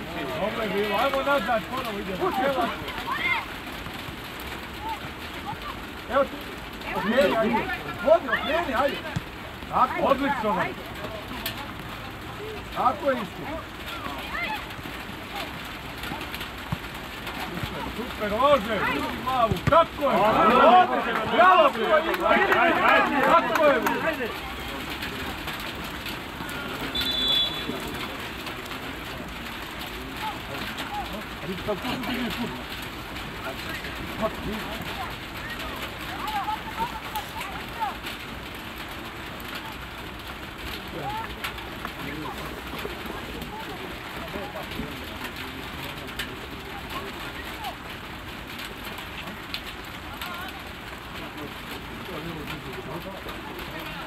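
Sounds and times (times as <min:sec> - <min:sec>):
distant shouts: 0:00.6 - 0:03.7, 0:13.4 - 0:28.5.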